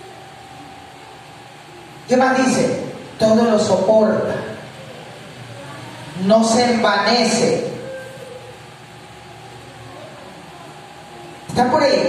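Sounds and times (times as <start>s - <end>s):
electric fans hissing: 0.0s - 12.0s.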